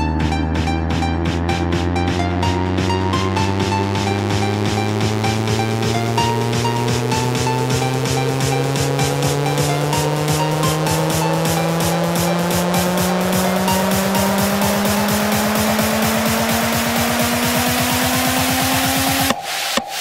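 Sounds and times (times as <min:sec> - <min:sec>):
fast drum roll: 0:00.0 - 0:20.0
synth tone rising in pitch: 0:00.0 - 0:20.0.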